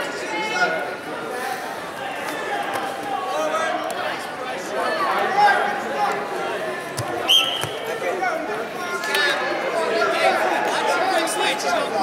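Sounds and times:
crowd voices: 0:00.0 - 0:12.0
referee's whistle blast: 0:07.2 - 0:07.8.

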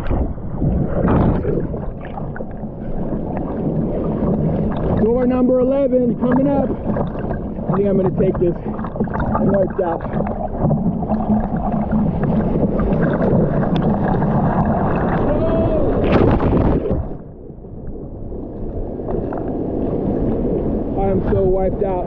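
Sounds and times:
water rushing and splashing: 0:00.0 - 0:22.0
person exclaiming: 0:15.2 - 0:16.0.

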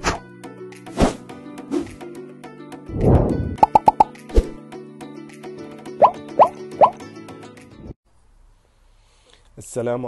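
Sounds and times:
rising bloops: 0:03.0 - 0:04.1
cartoon plops: 0:03.6 - 0:04.2, 0:06.0 - 0:07.0.

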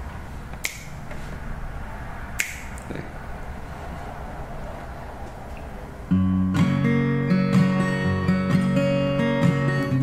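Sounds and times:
finger snaps: 0:00.6 - 0:01.0, 0:02.4 - 0:02.9.

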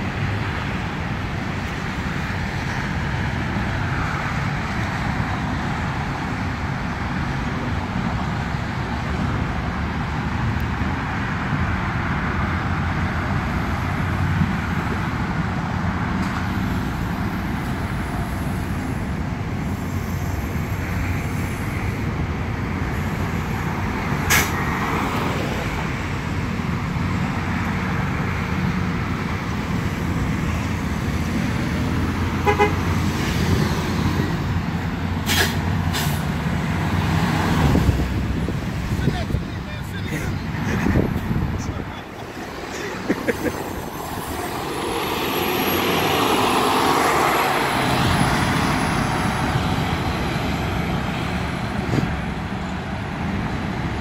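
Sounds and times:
bus engine running: 0:00.0 - 0:54.0
road traffic noise: 0:00.0 - 0:54.0.

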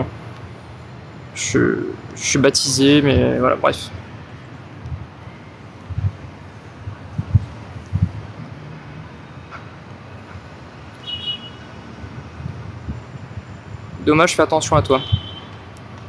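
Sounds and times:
wind on microphone: 0:04.8 - 0:05.2, 0:05.8 - 0:08.7, 0:12.0 - 0:14.1.

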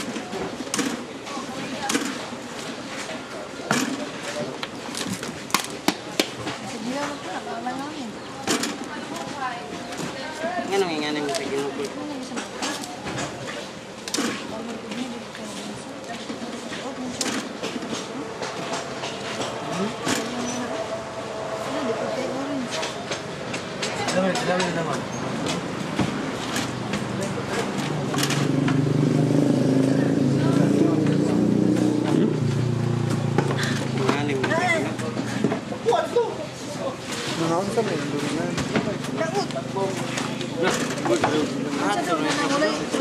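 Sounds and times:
motor vehicle passing: 0:16.9 - 0:36.8
people talking: 0:19.6 - 0:21.0, 0:21.6 - 0:23.1, 0:29.6 - 0:32.3.

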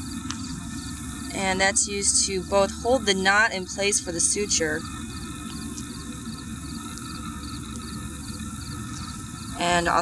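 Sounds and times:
cricket chirping: 0:00.0 - 0:10.0
steady low rumble: 0:00.0 - 0:10.0.

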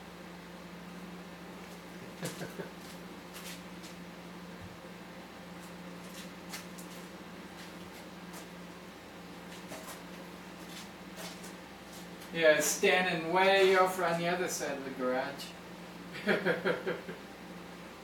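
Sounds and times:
microwave oven humming: 0:00.0 - 0:18.0.

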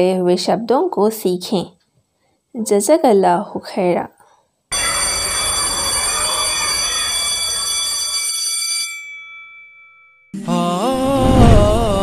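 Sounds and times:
music with singing voice: 0:10.4 - 0:12.0.

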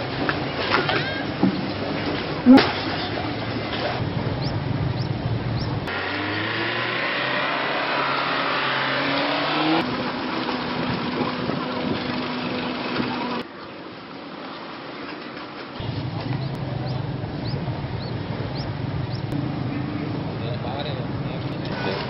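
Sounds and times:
busy street noise: 0:00.0 - 0:22.0
vehicle engine revving: 0:03.8 - 0:13.4, 0:15.8 - 0:22.0.

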